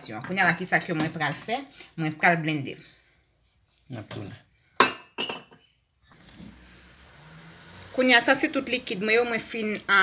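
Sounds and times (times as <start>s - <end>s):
kitchenware clinking: 4.0s - 5.8s.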